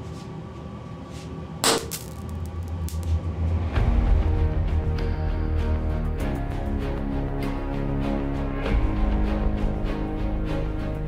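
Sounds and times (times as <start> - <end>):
background music: 1.9 - 11.0.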